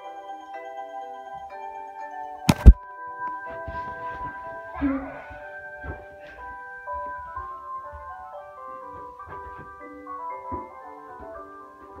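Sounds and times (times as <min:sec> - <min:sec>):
melody of held notes: 0:00.0 - 0:12.0.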